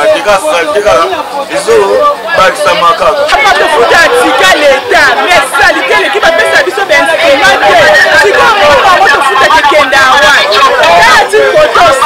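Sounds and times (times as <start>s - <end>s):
man talking: 0.0s - 12.0s
voices chattering: 0.0s - 12.0s.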